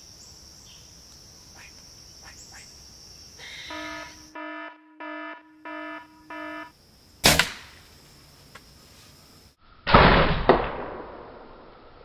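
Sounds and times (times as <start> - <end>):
short flat electronic buzzes: 3.7 - 6.7.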